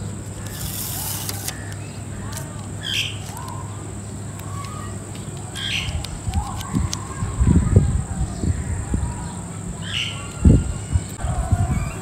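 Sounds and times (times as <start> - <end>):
backing paper peeling off: 0.0 - 3.6
steady low hum: 0.0 - 12.0
sticker rustling on frame: 0.3 - 3.6.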